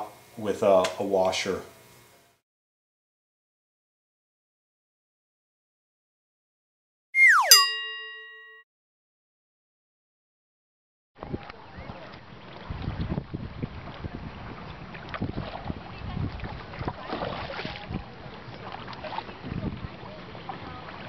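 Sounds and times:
wind on microphone: 0:11.2 - 0:21.0
water splashing from paddling: 0:12.0 - 0:21.0.

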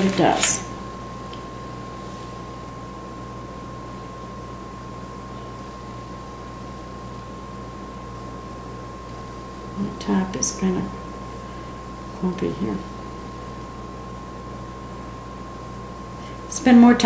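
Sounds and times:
background hum and hiss: 0:00.0 - 0:17.0.

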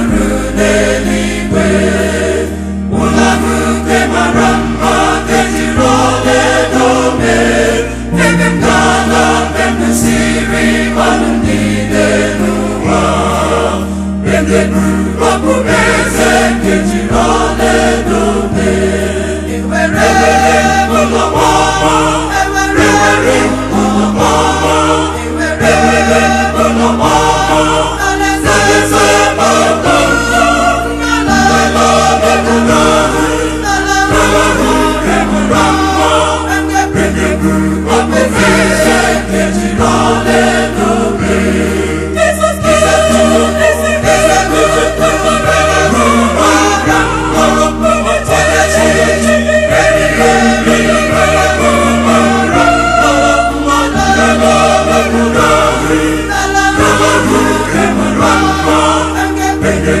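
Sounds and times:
mixed choir singing gospel: 0:00.0 - 1:00.0.

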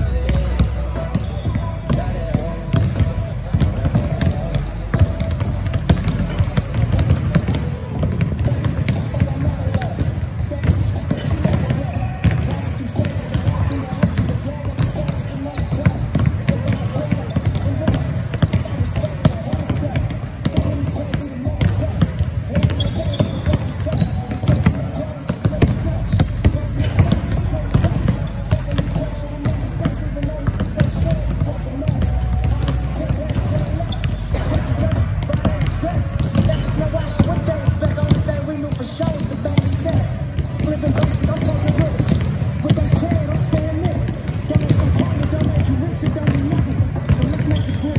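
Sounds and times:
basketballs bouncing on hardwood: 0:00.0 - 0:47.9.

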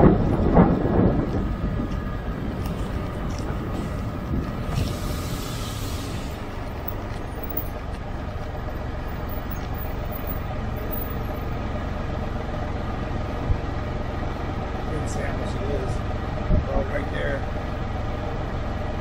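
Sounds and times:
wind noise: 0:00.0 - 0:08.2, 0:16.4 - 0:17.0
motorcycle engine idling: 0:06.2 - 0:19.0.

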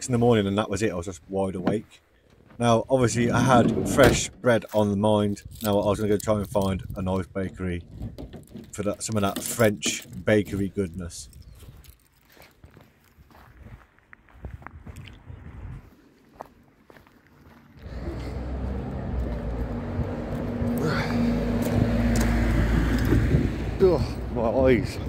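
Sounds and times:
road vehicle noise: 0:03.0 - 0:04.4, 0:15.4 - 0:25.0
footsteps crunching on gravel: 0:10.2 - 0:22.3
engine tone: 0:17.8 - 0:23.8.

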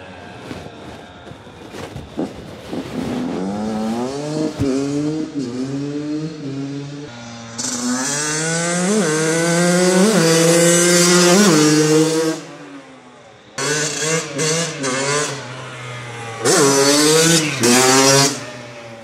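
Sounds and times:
dirt bike engine revving: 0:02.1 - 0:12.6, 0:13.6 - 0:19.0.

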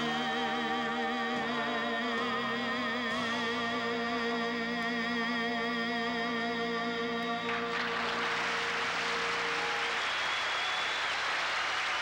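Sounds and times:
audience applauding: 0:07.4 - 0:12.0.

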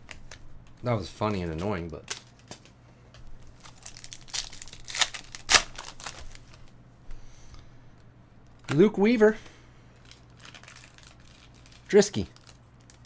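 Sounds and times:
foil wrapper tearing and crinkling: 0:03.6 - 0:06.7, 0:10.0 - 0:13.0.

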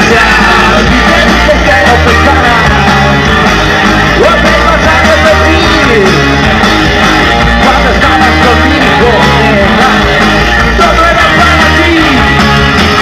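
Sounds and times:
lead singer singing: 0:00.0 - 0:03.2, 0:04.1 - 0:06.4, 0:07.5 - 0:13.0
rock band playing live: 0:00.0 - 0:13.0.

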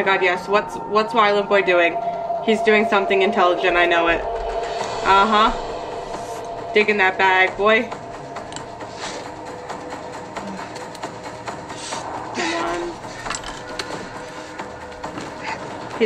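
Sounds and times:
low held tone music: 0:00.0 - 0:16.0.

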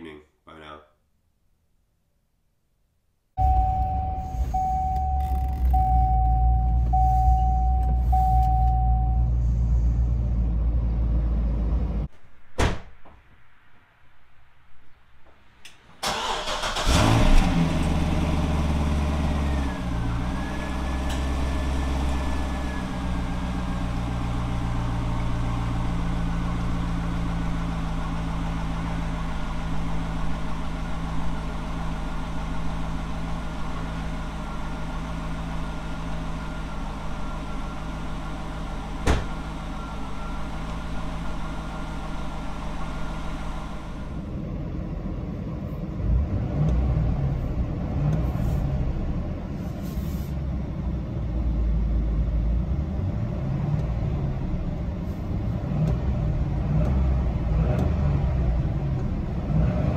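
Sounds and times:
car engine starting and idling: 0:03.4 - 0:12.1, 0:15.6 - 0:59.9.

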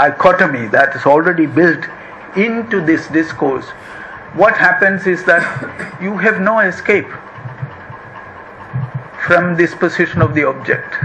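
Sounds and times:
room hum with hiss: 0:00.0 - 0:11.0.

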